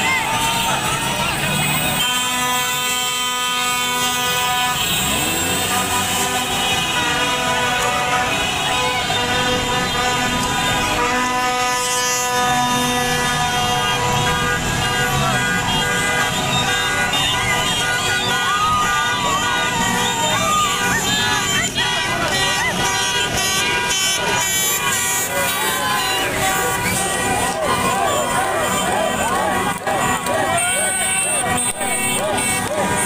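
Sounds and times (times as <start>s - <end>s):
car horns blasting: 0.0s - 33.0s
crowd shouting and cheering: 0.0s - 33.0s.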